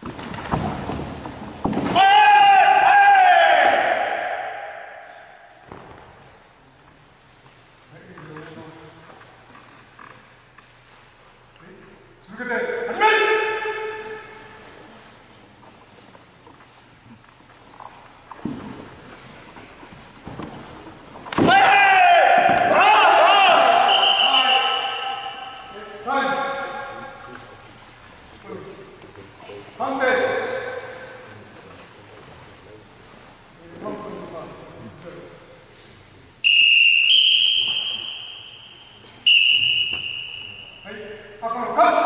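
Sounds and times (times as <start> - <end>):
loud long shout: 1.9 - 5.3, 21.4 - 25.5
referee calling: 21.4 - 27.2, 36.4 - 41.3.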